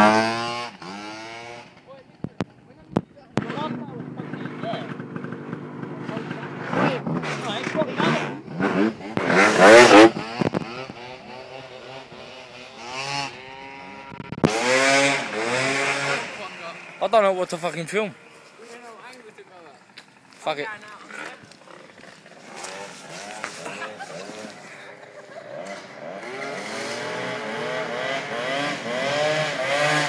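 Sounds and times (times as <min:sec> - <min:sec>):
scooter engine revving: 0:00.0 - 0:02.5, 0:03.4 - 0:18.4, 0:19.0 - 0:30.0.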